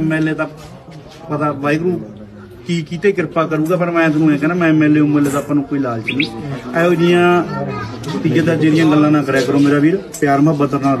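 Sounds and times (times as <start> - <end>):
man speaking: 5.7 - 7.1.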